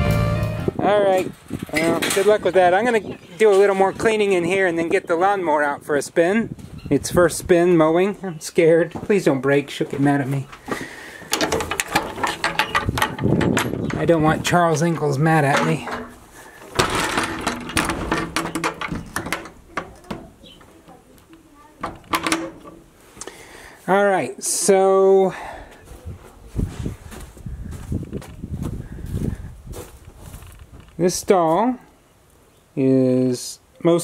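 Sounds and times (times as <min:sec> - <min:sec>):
footsteps on dirt floor: 0:06.5 - 0:06.8, 0:07.7 - 0:22.0, 0:25.6 - 0:31.7
scraping rustle: 0:09.0 - 0:23.1, 0:26.1 - 0:31.0.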